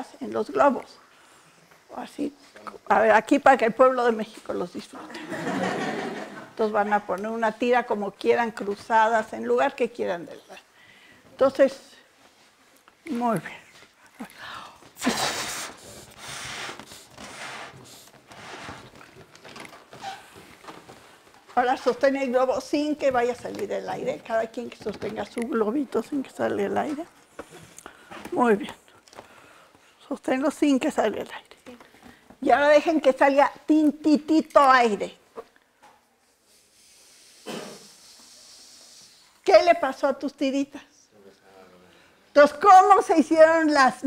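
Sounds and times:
person blowing up a balloon: 15.0s - 19.0s, 36.5s - 39.3s.

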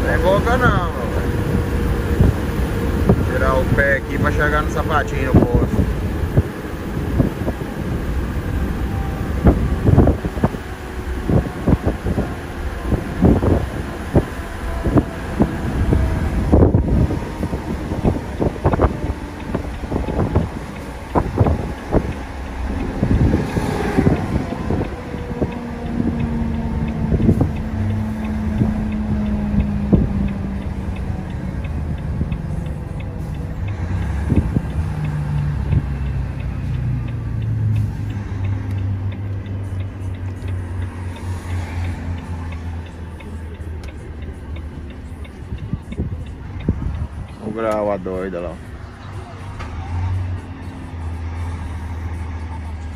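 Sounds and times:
truck diesel engine: 0.0s - 52.9s.

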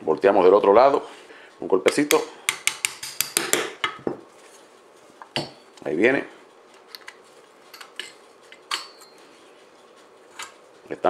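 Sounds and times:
hammer tapping metal punch: 1.9s - 4.1s.

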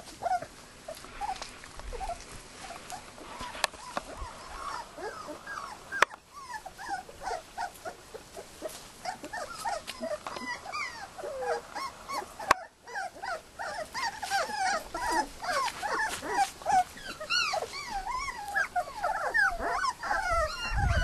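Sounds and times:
puppies whimpering and yelping: 0.0s - 21.0s.

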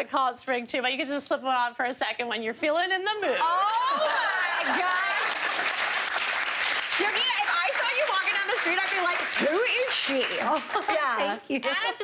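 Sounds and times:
women laughing and exclaiming: 3.4s - 5.6s, 10.4s - 12.0s
audience applauding: 4.2s - 11.2s.

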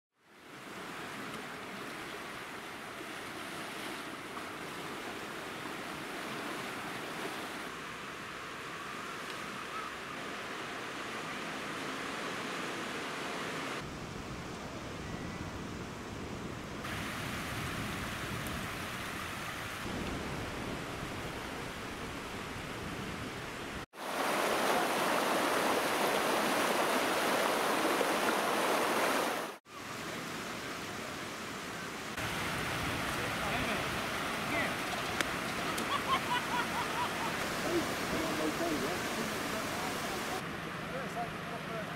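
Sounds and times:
sea waves washing onto shore: 0.4s - 13.9s, 16.8s - 41.8s.

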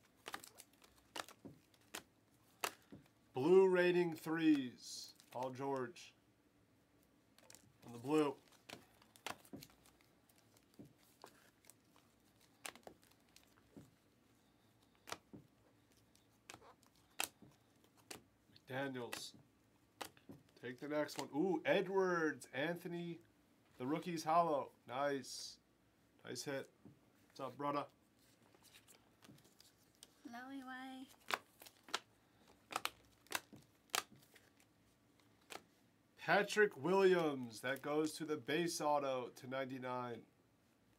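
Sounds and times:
cards being flipped by hand: 0.0s - 3.2s, 7.4s - 19.4s, 20.0s - 21.4s, 28.2s - 30.2s, 31.1s - 35.8s
cards snapping off a stack: 0.2s - 3.0s.

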